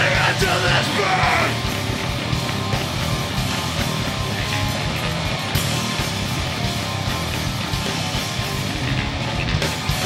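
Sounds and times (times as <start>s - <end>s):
vocalist screaming: 0.0s - 1.7s
punk band playing live: 0.0s - 10.0s.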